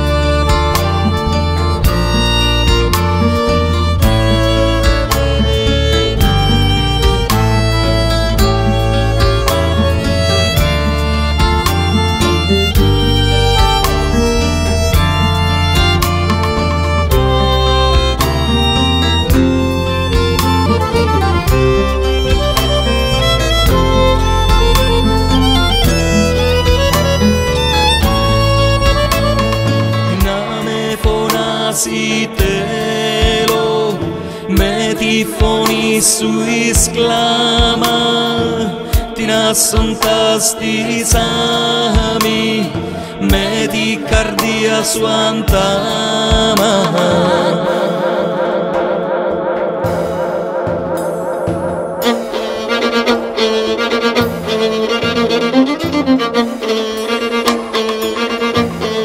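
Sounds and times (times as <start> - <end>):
violin melody: 0.0 - 33.4, 49.8 - 59.0
sustained bass notes: 0.0 - 59.0
percussion hits: 0.4 - 31.5, 48.3 - 59.0.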